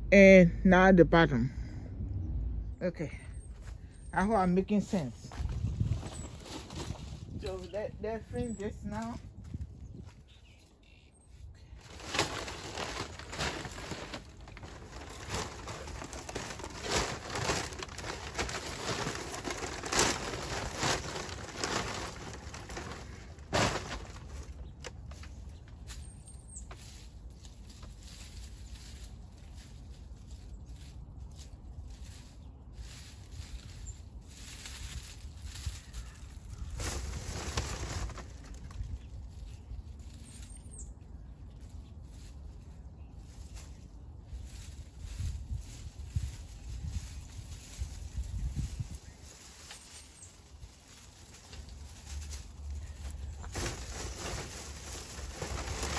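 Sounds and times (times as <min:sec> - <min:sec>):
paper bag and clippings rustling: 0:04.8 - 0:09.2, 0:11.8 - 0:40.8, 0:43.3 - 0:55.9.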